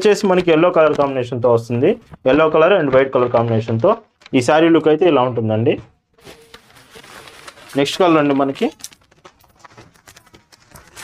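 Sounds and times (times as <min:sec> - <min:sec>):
fabric rustling: 0:06.2 - 0:11.0.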